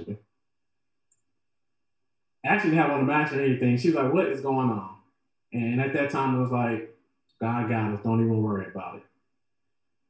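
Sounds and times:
man's voice: 0:02.4 - 0:04.9, 0:05.6 - 0:06.8, 0:07.4 - 0:09.0.

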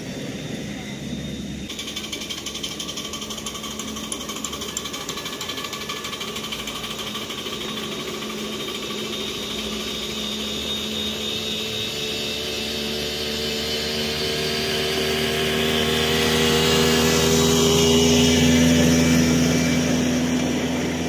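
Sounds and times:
miniature train rattling past: 0:00.0 - 0:21.0.

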